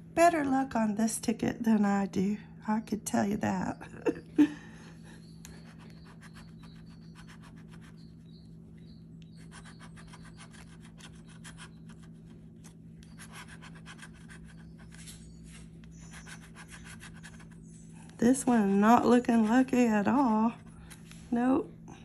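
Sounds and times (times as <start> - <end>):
scratching lottery ticket: 5.5 - 8.4, 9.2 - 17.7.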